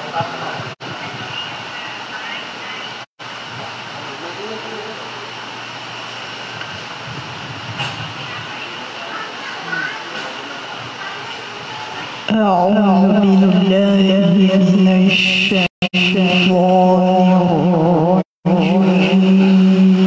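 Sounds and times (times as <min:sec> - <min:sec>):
faint indistinct voices: 0:07.7 - 0:13.5.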